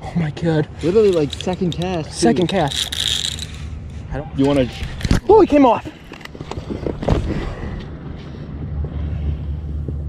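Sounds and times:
wind buffeting microphone: 0:06.3 - 0:10.0.

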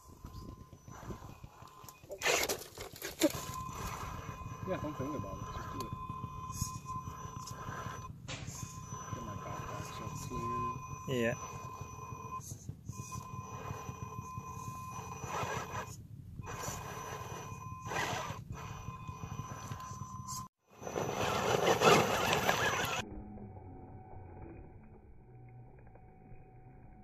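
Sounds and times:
bursts of rough noise: 0:00.0 - 0:23.0
electric motor whining: 0:00.0 - 0:27.0.

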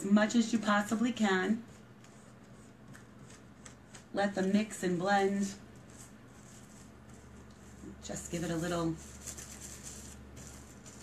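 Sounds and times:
plastic sheet rubbing and rustling: 0:08.4 - 0:11.0.

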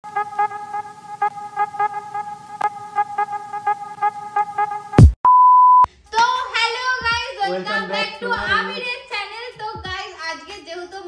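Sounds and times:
pure beep: 0:05.0 - 0:05.9.

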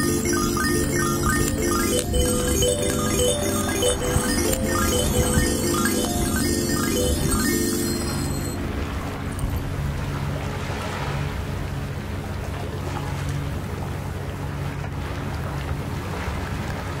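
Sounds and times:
small waves on shore: 0:09.8 - 0:17.0.

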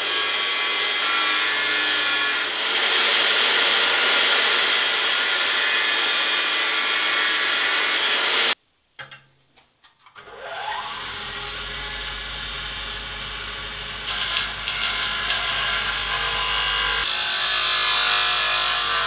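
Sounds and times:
cut-off disc cutting steel: 0:00.0 - 0:08.6, 0:10.2 - 0:19.0
bench grinder motor whine: 0:10.3 - 0:19.0.

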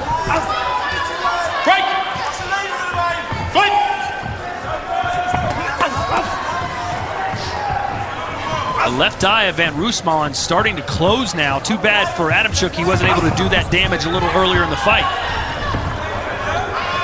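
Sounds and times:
people shouting: 0:00.0 - 0:10.0, 0:10.7 - 0:17.0.

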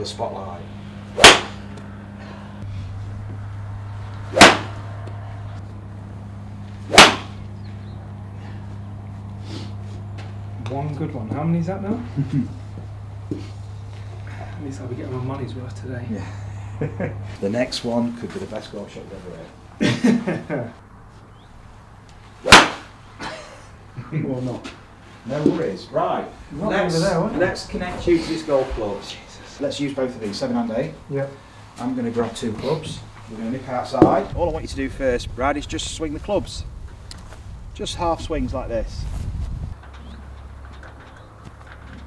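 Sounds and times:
golf club striking ball: 0:01.1 - 0:01.9, 0:04.2 - 0:05.6, 0:06.8 - 0:08.0, 0:22.4 - 0:22.9
golf club swish: 0:06.8 - 0:07.4, 0:22.4 - 0:22.9.

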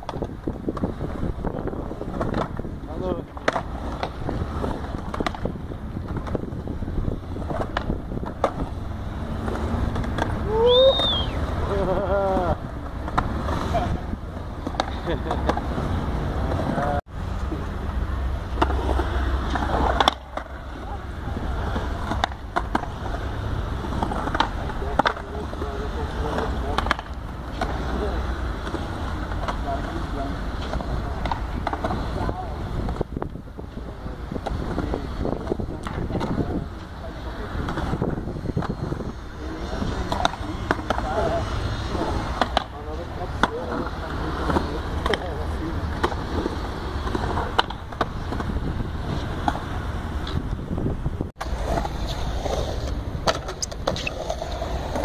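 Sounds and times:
skateboard clacks: 0:00.0 - 0:17.7, 0:18.3 - 0:50.6, 0:51.4 - 0:55.0
skateboard wheels rolling on concrete: 0:00.0 - 0:55.0.

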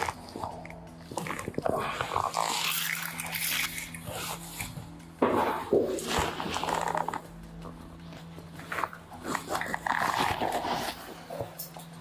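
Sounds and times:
person making guttural sounds: 0:00.0 - 0:04.5
steady low hum: 0:00.0 - 0:12.0.

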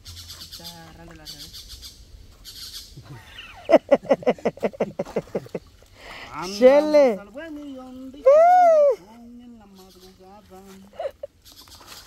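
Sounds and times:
bird calling harsh notes: 0:00.0 - 0:03.8.

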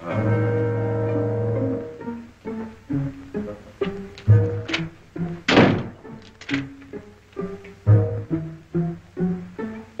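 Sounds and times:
orchestral music with plucked strings: 0:00.0 - 0:10.0
loud noisy thump: 0:05.5 - 0:06.2.

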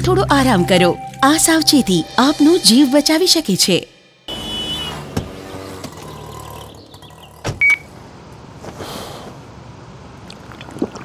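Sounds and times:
cars and motorbikes running: 0:04.3 - 0:08.8.

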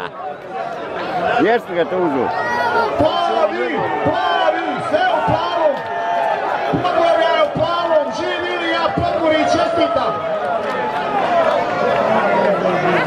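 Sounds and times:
crowd of men shouting and cheering: 0:00.0 - 0:13.0.

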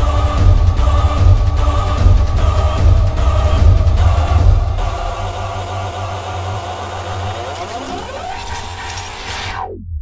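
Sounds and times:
hardstyle synth build-up: 0:00.3 - 0:10.0.

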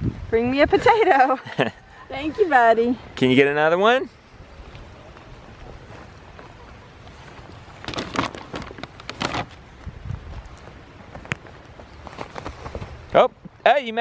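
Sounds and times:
low outdoor background: 0:00.0 - 0:14.0
paper bag crinkling: 0:07.8 - 0:09.5.

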